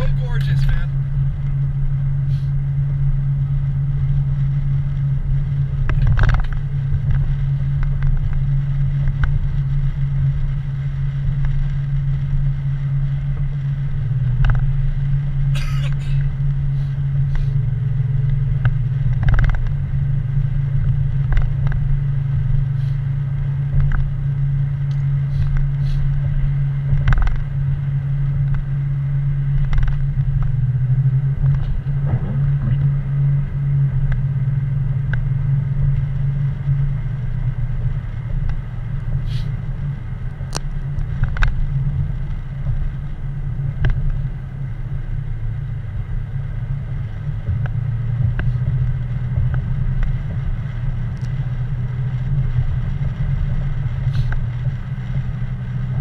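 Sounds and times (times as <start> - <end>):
car engine and tyres drone: 0.0 - 56.0
faint ticks: 51.1 - 51.4.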